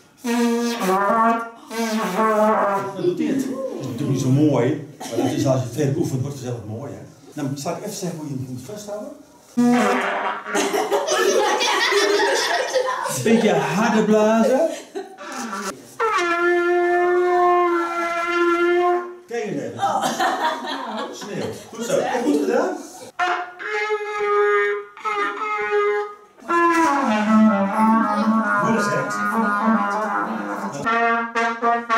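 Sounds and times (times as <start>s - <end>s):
trumpet notes: 0.2s - 3.0s, 9.6s - 10.7s, 15.2s - 19.3s, 23.1s - 31.9s.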